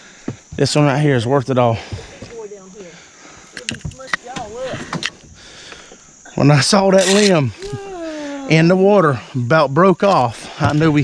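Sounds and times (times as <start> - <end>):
faint voice speaking: 7.0 - 8.9.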